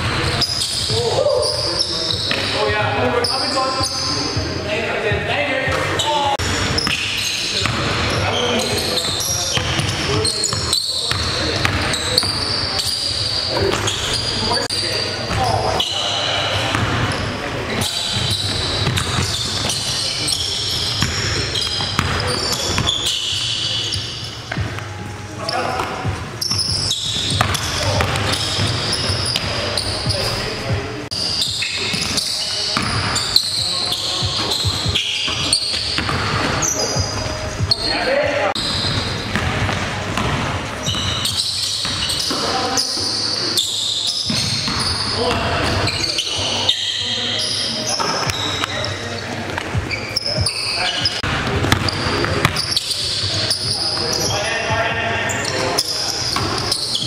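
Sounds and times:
basketball bouncing on hardwood floor: 0:51.3 - 0:52.6.

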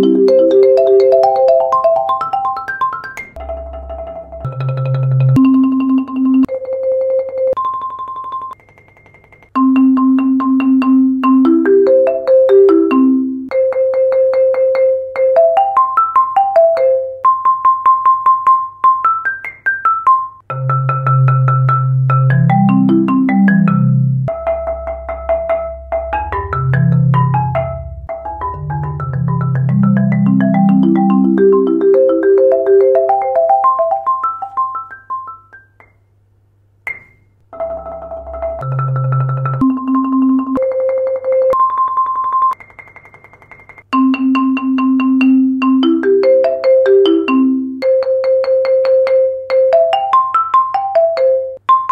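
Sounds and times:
marimba playing: 0:00.0 - 0:08.6, 0:09.6 - 0:36.0, 0:36.9 - 0:51.9.

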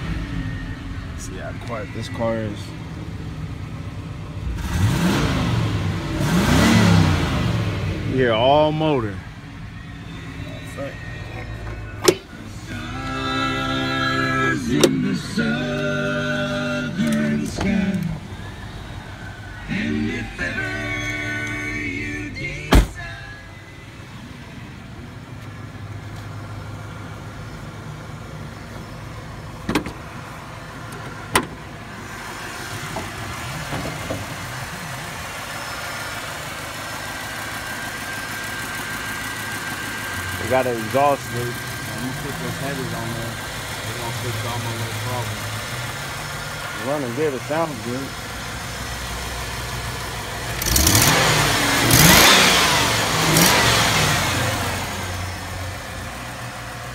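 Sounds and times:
car engine revving and idling: 0:00.0 - 0:56.9.

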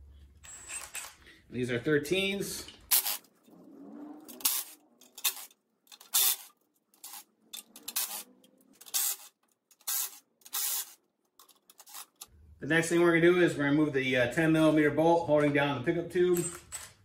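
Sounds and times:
cordless power driver spinning bolts: 0:04.3 - 0:11.0.

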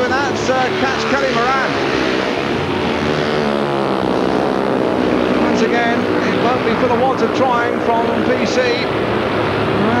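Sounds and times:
motorcycle engines racing: 0:00.0 - 0:10.0.

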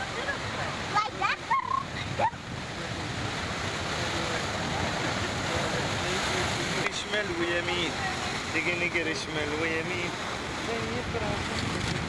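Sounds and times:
sea waves breaking on rocks: 0:00.0 - 0:12.0.

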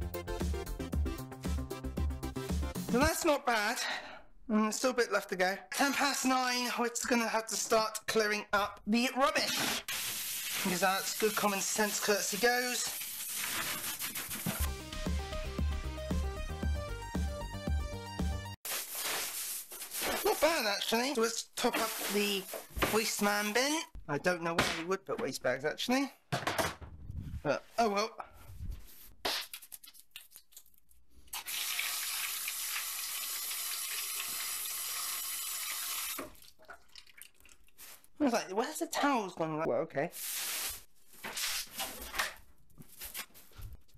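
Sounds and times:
electronic music with heavy bass: 0:00.0 - 0:03.1, 0:14.6 - 0:18.6
plastic bin bag rustling: 0:18.7 - 0:23.2.

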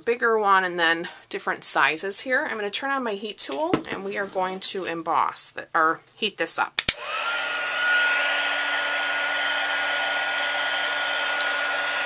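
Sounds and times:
heat tool fan blowing with whine: 0:07.0 - 0:12.0.

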